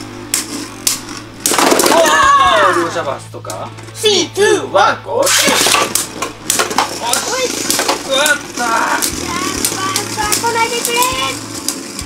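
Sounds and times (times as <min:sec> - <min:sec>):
spinning tops clacking: 0:05.3 - 0:12.0
spinning tops whirring: 0:05.3 - 0:12.0.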